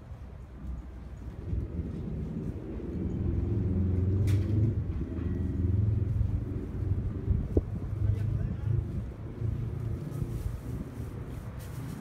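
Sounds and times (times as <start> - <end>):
low street rumble: 0.0 - 12.0
wind on microphone: 0.0 - 12.0.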